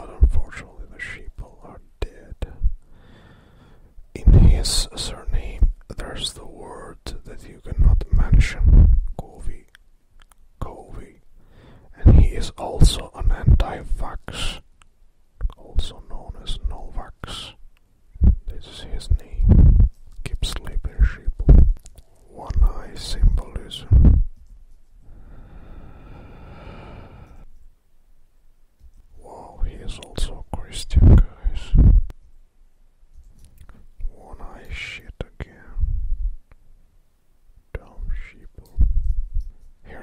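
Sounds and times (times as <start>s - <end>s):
person whispering: 0.0s - 2.7s, 4.2s - 9.8s, 10.6s - 11.3s, 11.9s - 14.7s, 15.4s - 17.6s, 18.2s - 24.4s, 29.1s - 32.1s, 33.6s - 35.9s, 37.7s - 39.1s.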